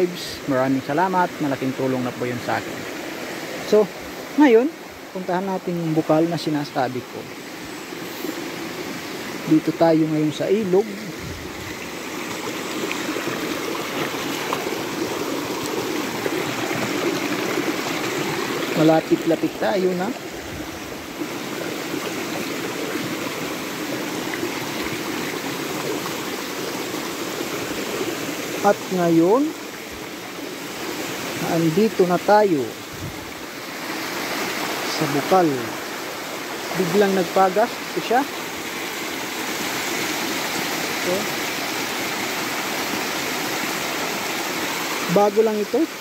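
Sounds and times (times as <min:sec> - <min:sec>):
stream rushing over stones: 0:00.0 - 0:46.0.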